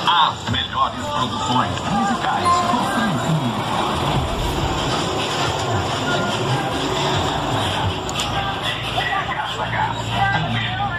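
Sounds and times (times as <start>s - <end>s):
bus engine rumble: 0.0s - 10.9s
crowd noise: 0.0s - 10.9s.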